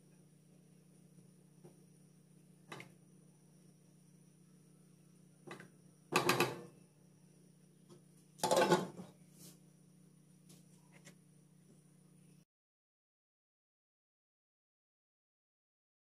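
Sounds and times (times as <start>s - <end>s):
glass pot lid clattering on pan: 8.4s - 9.0s.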